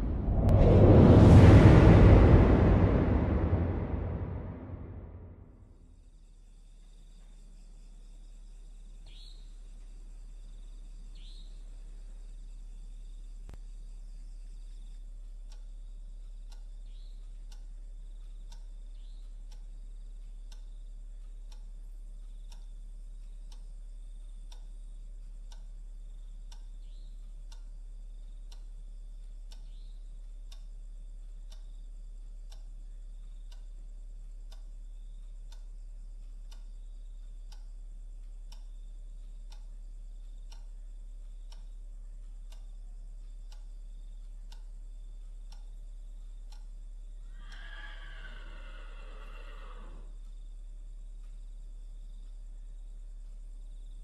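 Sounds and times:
low electrical hum: 0.0s - 47.3s, 49.6s - 54.0s
clock ticking: 15.3s - 47.7s.

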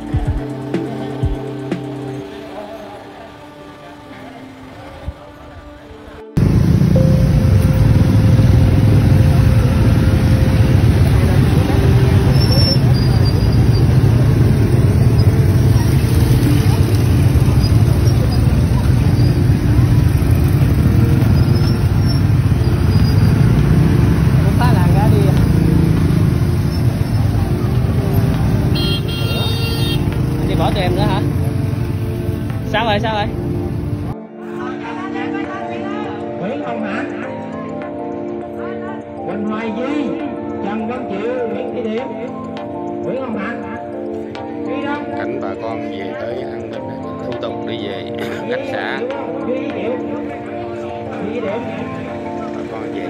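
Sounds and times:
road noise: 0.0s - 34.4s, 35.5s - 53.0s
motorcycle engines running: 6.4s - 34.2s, 48.8s - 53.0s.

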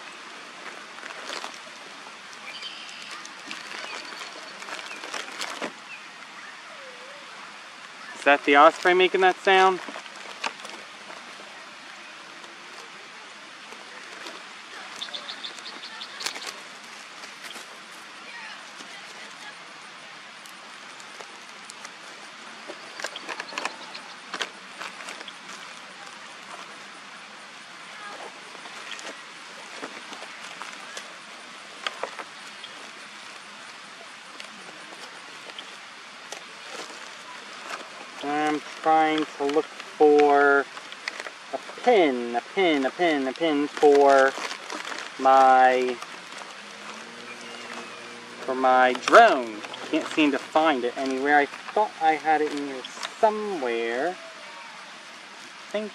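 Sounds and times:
outdoor background hiss: 0.0s - 55.9s.

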